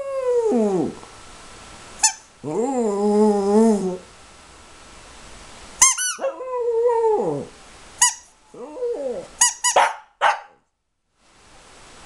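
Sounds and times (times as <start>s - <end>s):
dog yipping: 5.8s - 6.4s, 9.4s - 10.6s
dog howling: 6.2s - 7.5s, 8.5s - 9.3s
dog barking: 9.7s - 10.6s.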